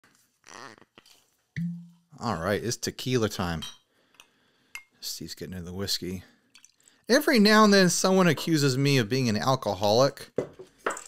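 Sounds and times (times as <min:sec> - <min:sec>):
cork popping free: 0:01.6 - 0:02.0
bottle ringing low: 0:01.6 - 0:02.1.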